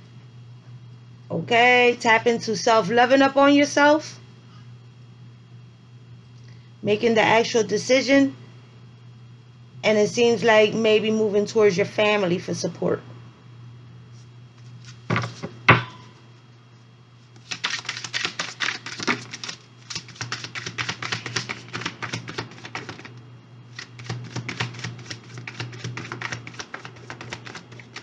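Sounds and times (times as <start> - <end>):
low steady hum: 0.0 - 28.0
cards being shuffled: 14.6 - 15.6, 17.4 - 23.1, 23.7 - 28.0.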